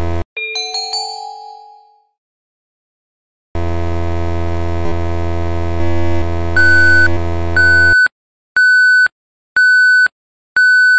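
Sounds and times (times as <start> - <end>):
buzzing synthesized drone: 3.6 - 7.6.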